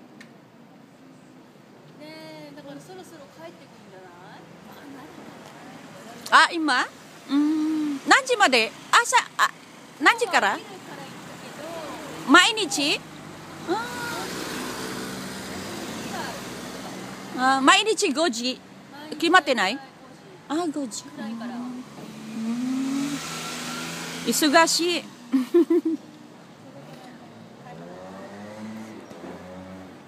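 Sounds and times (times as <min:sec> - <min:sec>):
cars passing on street: 0:00.0 - 0:30.0.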